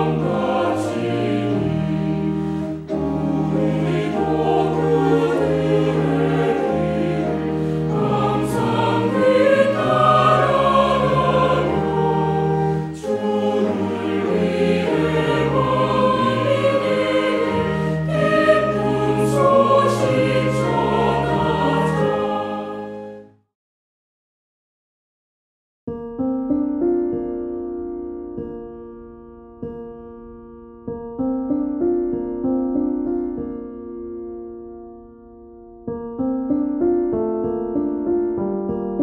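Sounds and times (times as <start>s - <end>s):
choir singing a hymn: 0.0s - 23.2s.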